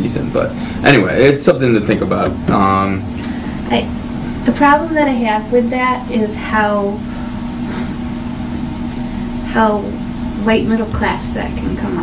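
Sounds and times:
low room rumble: 0.0s - 12.0s
steady low hum: 0.0s - 12.0s.

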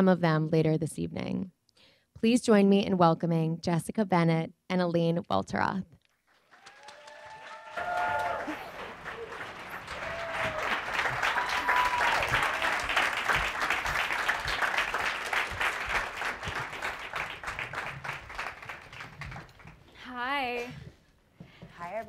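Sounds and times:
audience applauding: 6.2s - 19.8s.

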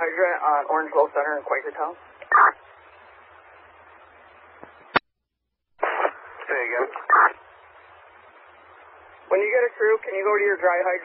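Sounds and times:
garbled radio transmission: 0.0s - 2.8s, 5.8s - 7.5s
radio channel hiss: 0.0s - 5.0s, 5.8s - 11.0s
radio squelch click: 5.8s - 7.4s.

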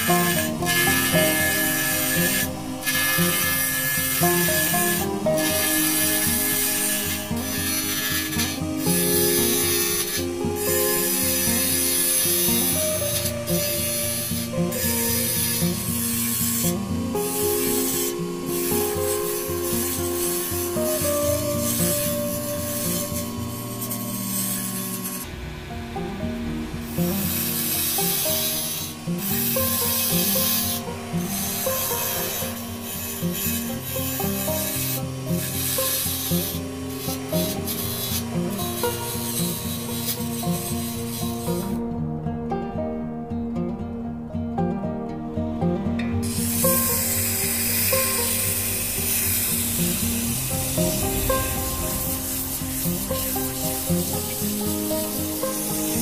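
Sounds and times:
turning tool cutting wood: 0.0s - 41.9s, 46.2s - 56.0s
wood lathe spinning: 0.0s - 41.9s, 46.2s - 56.0s
background music: 0.0s - 56.0s.

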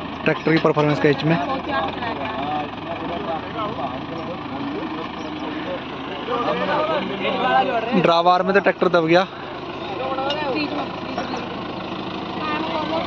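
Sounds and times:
tractor engine idling: 0.0s - 13.0s
men talking: 0.2s - 1.7s, 2.3s - 11.6s.

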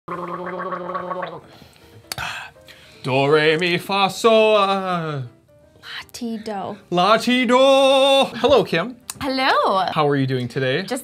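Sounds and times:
man singing warbling gargled note: 0.1s - 1.4s.

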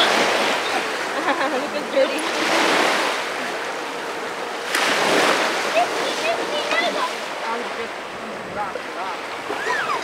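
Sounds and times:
waves washing onto stony beach: 0.0s - 10.0s.

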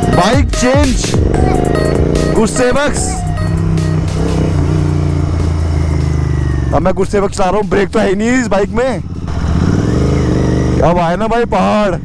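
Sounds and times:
motorcycle engine droning: 0.0s - 12.0s.

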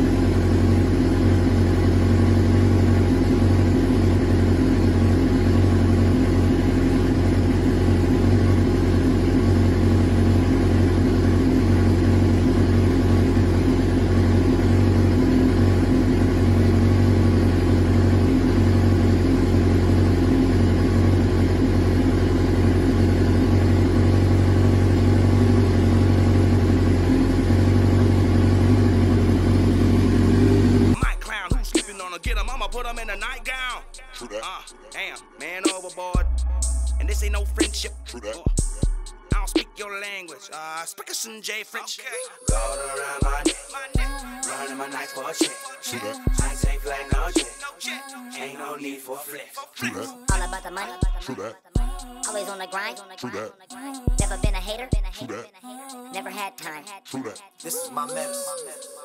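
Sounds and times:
motorcycle engine idling: 0.0s - 39.7s, 42.4s - 45.6s, 46.2s - 47.7s, 54.0s - 55.1s.

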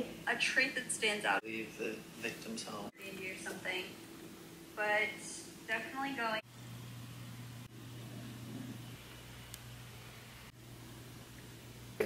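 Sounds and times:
faint low hum: 0.0s - 12.0s
light hiss: 6.5s - 12.0s.

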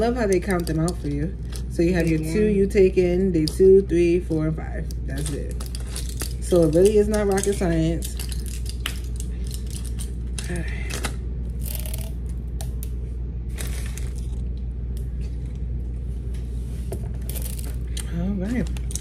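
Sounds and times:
steady low hum: 0.0s - 19.0s
blister pack clicks and crinkles: 5.2s - 10.5s.

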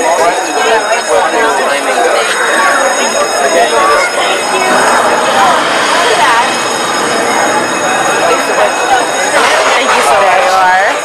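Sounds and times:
overlapping chatter: 0.0s - 11.0s
high-pitched whine: 2.4s - 10.8s.

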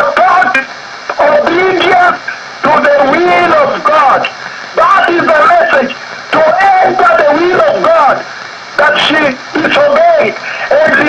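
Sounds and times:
preacher speaking over radio: 0.0s - 11.0s.

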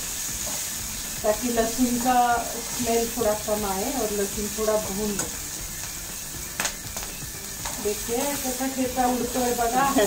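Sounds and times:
chillies sizzling in oil: 0.0s - 10.0s.

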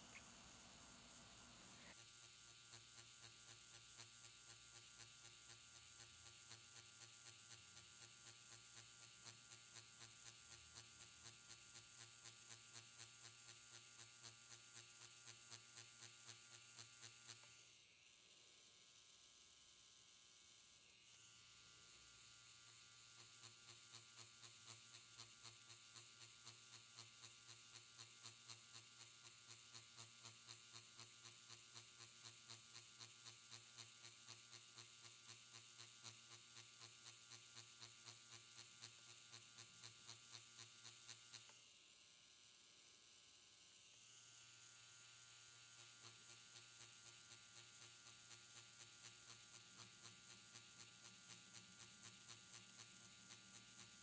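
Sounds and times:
faint buzz of tattoo machine: 0.0s - 54.0s.

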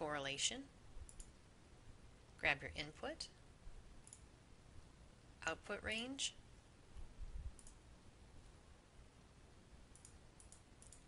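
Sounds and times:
faint computer mouse clicks: 1.0s - 1.4s, 4.0s - 4.3s, 7.6s - 7.8s, 9.9s - 11.0s.

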